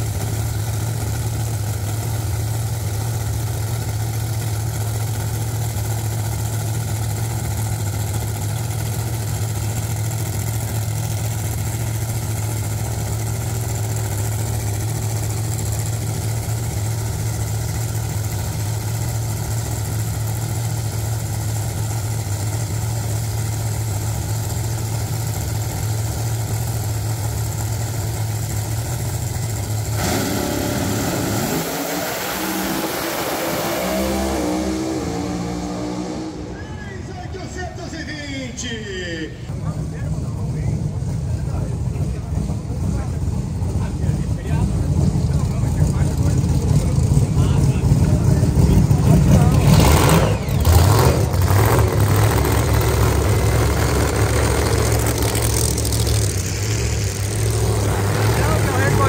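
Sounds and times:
drag car engines idling: 0.0 - 59.0
engines at full throttle: 0.0 - 59.0.

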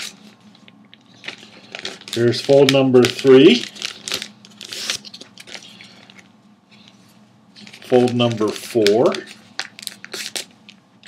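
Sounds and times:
paper folding and crinkling: 0.0 - 10.8.

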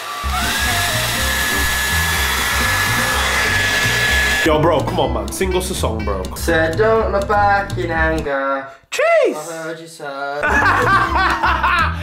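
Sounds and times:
hair dryer blowing: 0.0 - 4.5
background music bass line: 0.3 - 8.3, 10.4 - 12.0.

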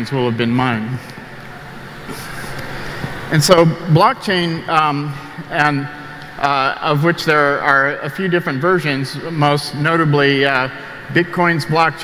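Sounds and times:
large hall background hiss: 0.0 - 12.0.

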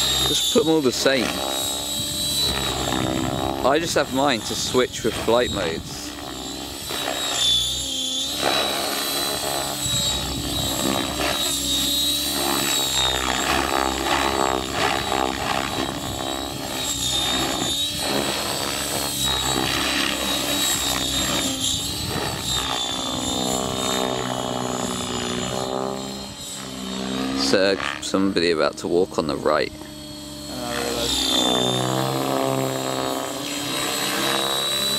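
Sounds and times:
rc helicopter motor whine: 0.0 - 34.9
rotor blade noise: 0.0 - 34.9.

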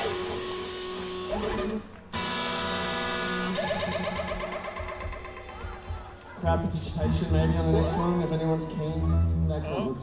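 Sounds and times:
electric guitar chord ringing: 2.1 - 4.8.

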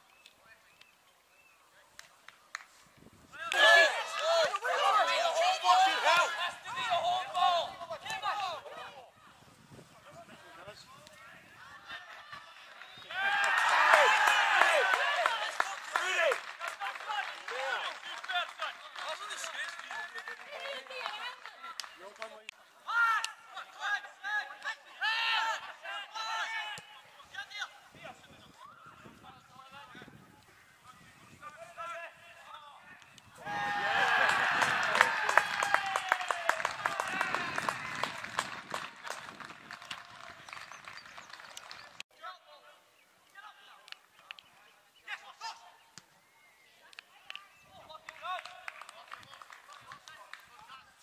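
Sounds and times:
faint outdoor background noise: 0.0 - 51.0.

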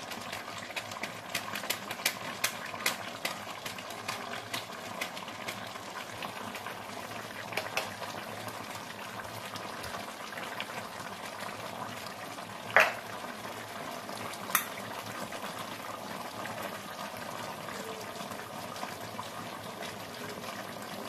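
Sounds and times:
curry simmering with pops: 0.0 - 21.0.

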